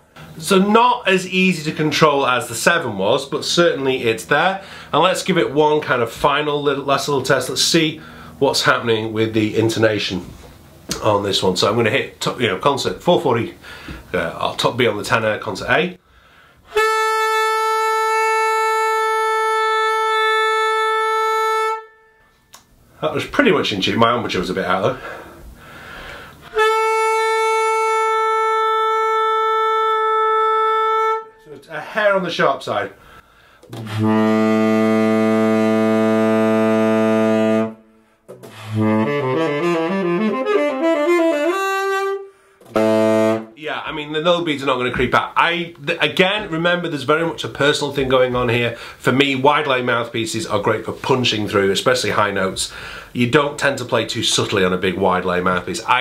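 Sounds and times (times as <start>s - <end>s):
tenor saxophone long note: 16.7s - 22.6s, 26.4s - 31.4s, 33.0s - 43.6s.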